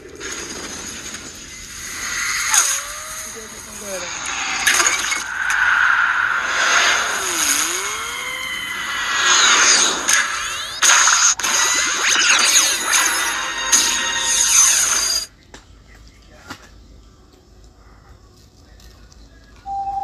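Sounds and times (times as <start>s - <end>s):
action sound effects: 1.5s - 15.3s.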